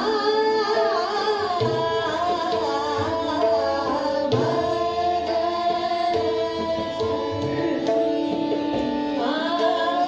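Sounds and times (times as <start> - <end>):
harmonium: 0.0 - 10.0
tanpura drone: 0.0 - 10.0
woman singing classical melody: 0.0 - 10.0.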